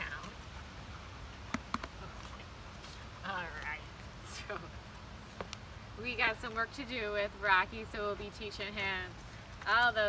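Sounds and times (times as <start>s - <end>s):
sharp clicks: 1.5s - 2.0s.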